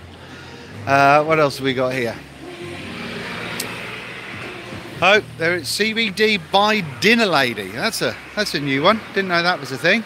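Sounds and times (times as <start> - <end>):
exhibition hall hum and hiss: 0.0 - 10.0.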